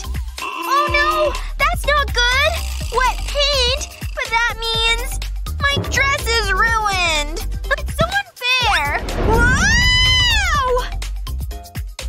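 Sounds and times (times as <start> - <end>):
background music: 0.0 - 12.0
girl screaming: 0.7 - 1.4, 9.4 - 10.9.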